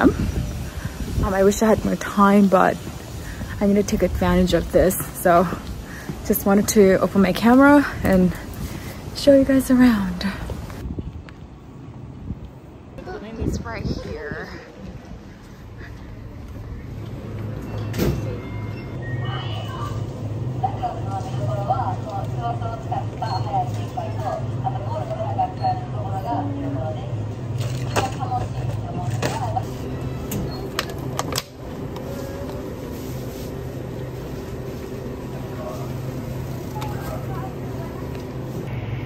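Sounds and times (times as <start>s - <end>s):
refrigerator and fans humming: 15.9s - 39.0s.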